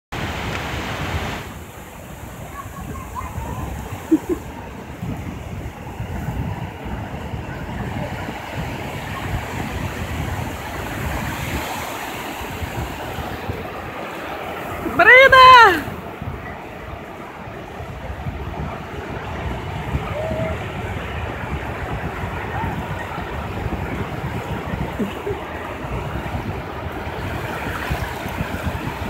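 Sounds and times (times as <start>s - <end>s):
ocean surf breaking: 0.1s - 29.0s
wind buffeting microphone: 0.2s - 29.0s.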